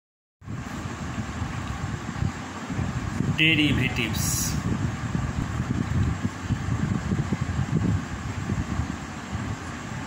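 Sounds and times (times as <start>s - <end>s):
background rumble and hiss: 0.5s - 10.0s.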